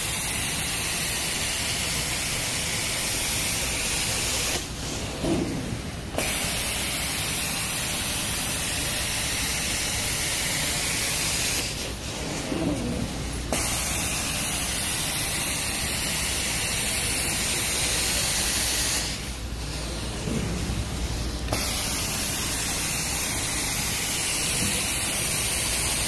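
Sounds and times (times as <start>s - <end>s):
carpet extraction wand hissing: 6.2s - 12.0s, 13.5s - 19.3s, 21.5s - 26.0s.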